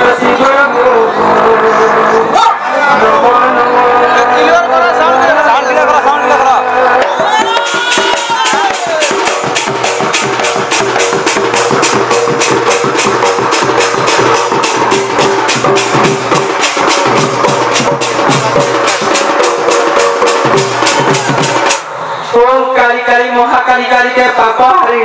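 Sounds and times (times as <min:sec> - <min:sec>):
fast hand drumming: 0:07.0 - 0:21.8.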